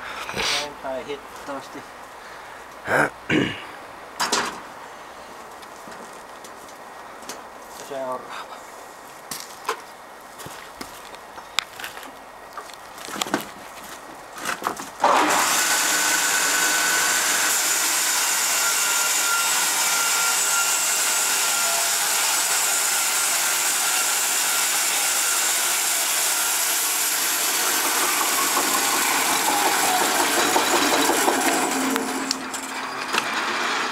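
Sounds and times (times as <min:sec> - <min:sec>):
band sawmill cutting board: 0:15.0 - 0:33.9.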